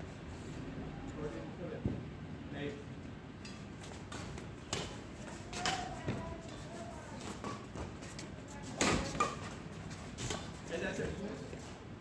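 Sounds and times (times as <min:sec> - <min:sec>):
players' voices in a hall: 0:00.5 - 0:12.0.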